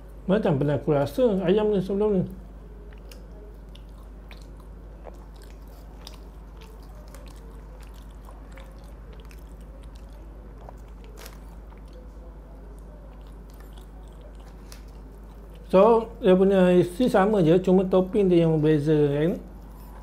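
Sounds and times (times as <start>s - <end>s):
chewing crunchy fried chicken: 2.3s - 16.2s.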